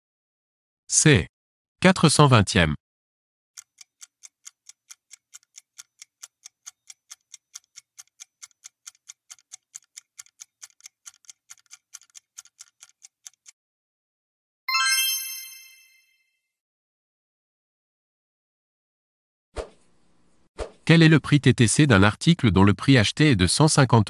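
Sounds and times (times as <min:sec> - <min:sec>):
clock ticking quickly: 0:03.6 - 0:13.6
bright chime: 0:14.7 - 0:16.4.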